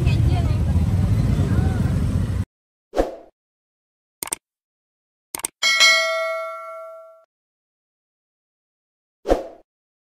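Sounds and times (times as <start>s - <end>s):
notification bell chime: 5.6s - 7.3s.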